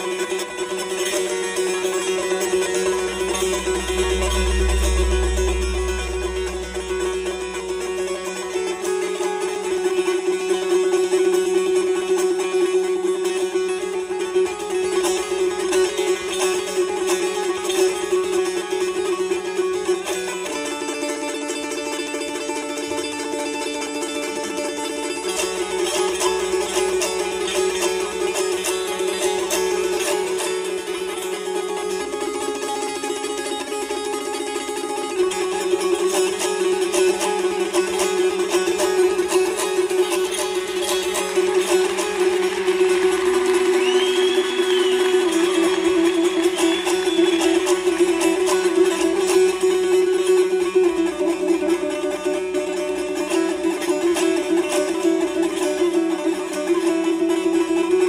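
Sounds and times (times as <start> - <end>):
droning note: 0.0 - 11.7, 25.2 - 52.2
plucked lute: 0.0 - 58.0.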